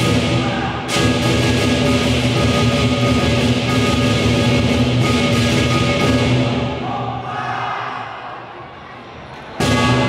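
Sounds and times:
drum cymbals and gong: 0.0s - 6.8s.

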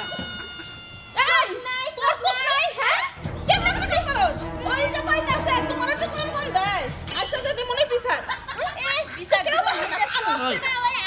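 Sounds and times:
background music: 3.1s - 9.6s.

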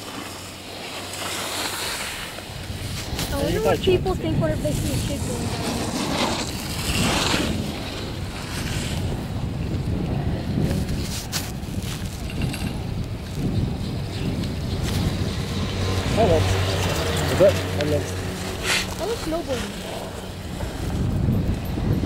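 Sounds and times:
chairlift rumble: 0.0s - 22.0s
wind rushing over microphone: 0.0s - 22.0s.

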